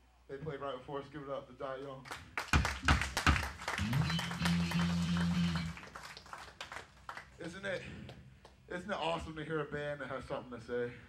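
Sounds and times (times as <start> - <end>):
small crowd applauding: 2.0 - 8.6
amplified low note: 3.8 - 5.8.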